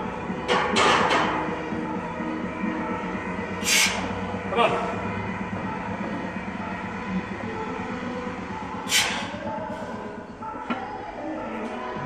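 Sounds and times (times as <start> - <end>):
rumbling with low hum: 0.0 - 11.0.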